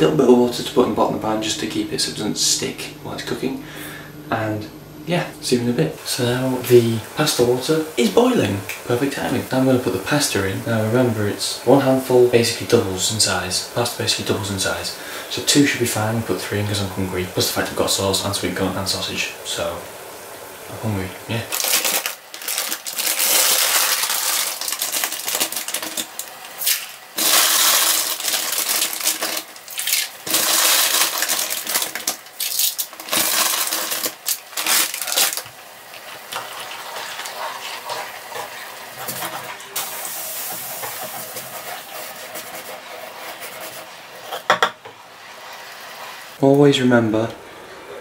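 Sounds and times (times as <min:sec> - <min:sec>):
boiling pot hissing: 0:05.1 - 0:46.5
dry pasta rattling into pan: 0:21.5 - 0:35.5.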